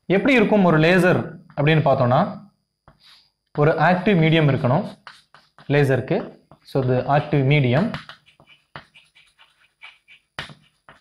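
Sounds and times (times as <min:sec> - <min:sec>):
chalk scratching on blackboard: 0:02.9 - 0:03.3, 0:04.8 - 0:05.8, 0:06.8 - 0:11.0
chalk tap: 0:04.8 - 0:11.0.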